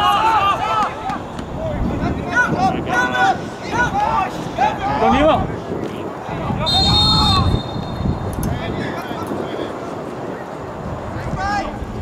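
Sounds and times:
wind rumbling on microphone: 0:00.0 - 0:12.0
people shouting short calls: 0:06.6 - 0:08.3.

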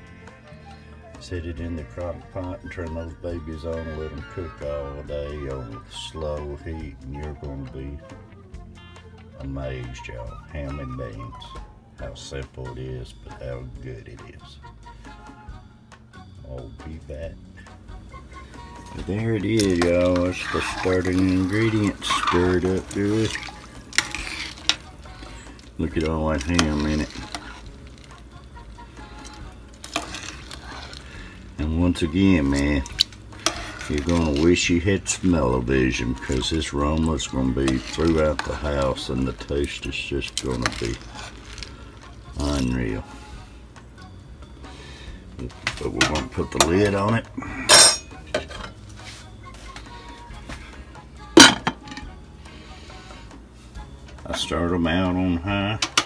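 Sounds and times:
spoon stirring beans in water: 0:18.1 - 0:43.5
glass lid clinking: 0:47.7 - 0:48.7.

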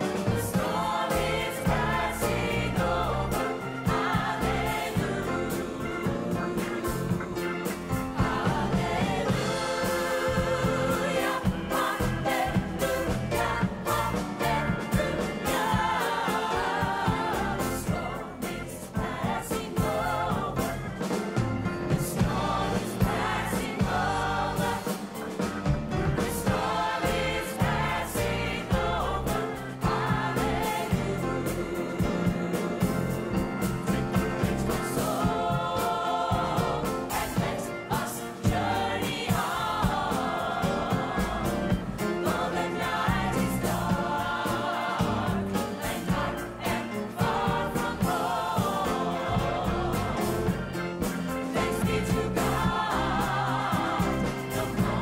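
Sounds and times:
choir singing with band: 0:00.0 - 0:55.0
instrumental accompaniment: 0:00.0 - 0:55.0
steady bass line: 0:00.2 - 0:55.0.

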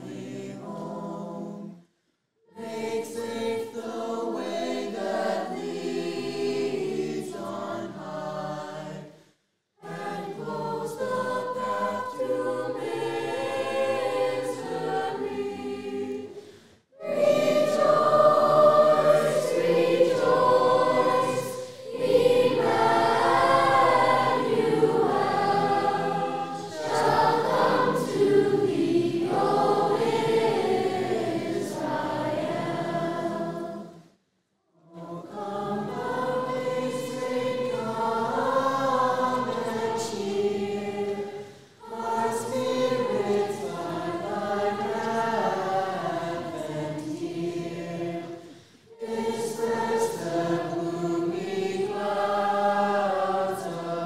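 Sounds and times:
school choir singing: 0:00.0 - 0:01.8, 0:02.5 - 0:09.1, 0:09.8 - 0:16.4, 0:17.0 - 0:34.0, 0:34.8 - 0:54.0.

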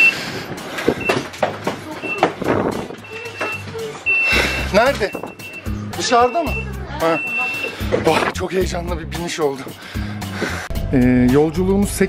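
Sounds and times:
bicycles clattering and knocking: 0:00.0 - 0:05.6
short high beeps: 0:03.0 - 0:07.7.

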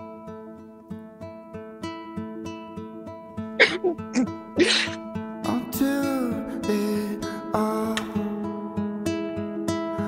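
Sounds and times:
acoustic guitar picking: 0:00.0 - 0:10.0
person's breathy vocal bursts: 0:03.6 - 0:05.0.

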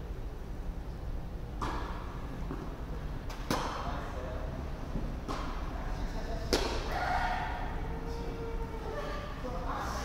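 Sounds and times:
tennis ball struck with racket: 0:03.3 - 0:03.8, 0:06.5 - 0:06.9.

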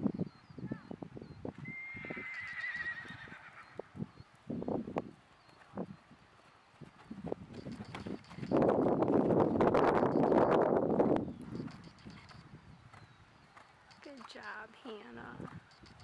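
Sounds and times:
horse whinnying: 0:01.6 - 0:03.9
hoofbeats on sand: 0:04.1 - 0:10.4, 0:11.0 - 0:16.0.

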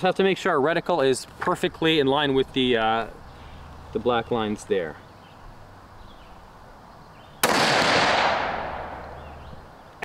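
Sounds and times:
rifle shot with echo: 0:07.4 - 0:09.1.

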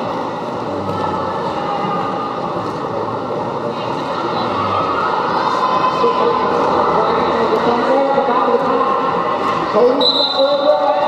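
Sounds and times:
crowd voices in hall: 0:00.0 - 0:11.0.

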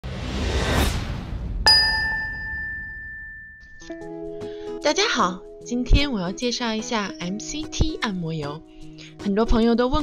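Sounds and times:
whoosh: 0:00.0 - 0:03.8
bright chime ringing: 0:01.7 - 0:04.0
music: 0:03.8 - 0:10.0.

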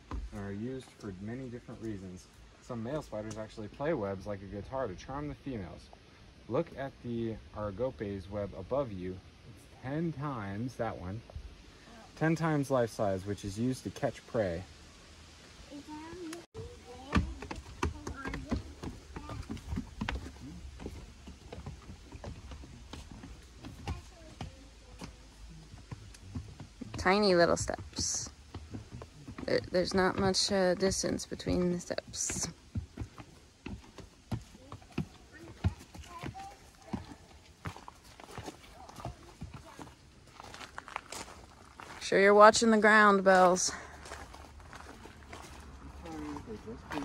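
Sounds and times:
footsteps on wooden boardwalk: 0:00.0 - 0:01.0, 0:16.2 - 0:47.0.

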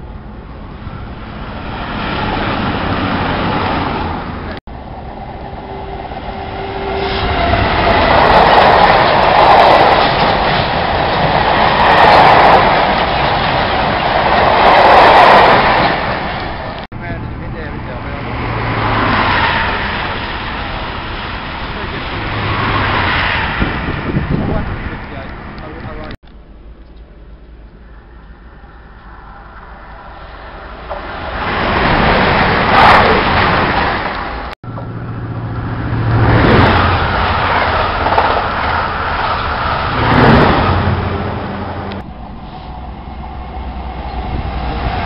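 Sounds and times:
distant trains approaching: 0:00.0 - 0:45.0
freight train rumbling and rattling past: 0:00.0 - 0:45.0.

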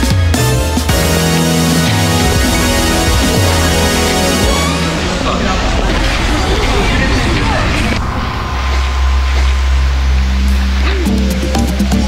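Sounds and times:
stepping melody: 0:00.0 - 0:06.1
deep bass note: 0:00.9 - 0:12.0.

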